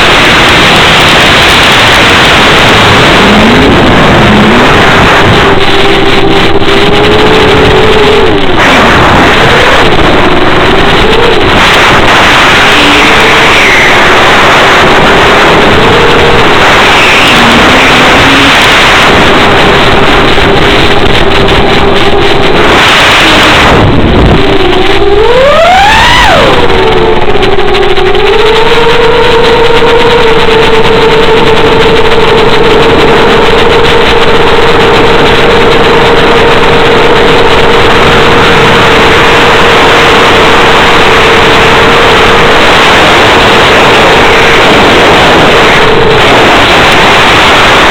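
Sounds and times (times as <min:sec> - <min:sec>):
electric motor propeller whine: 0:00.0 - 0:47.9
wind noise hiss: 0:00.0 - 0:47.9.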